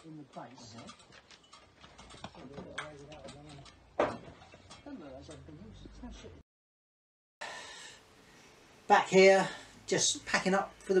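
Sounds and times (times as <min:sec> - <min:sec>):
men talking quietly: 0:00.0 - 0:01.1, 0:02.2 - 0:06.4.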